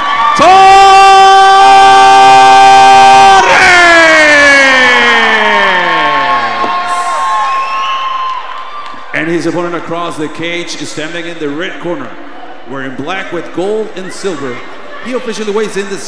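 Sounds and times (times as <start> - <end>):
crowd cheering: 0.0 - 9.8.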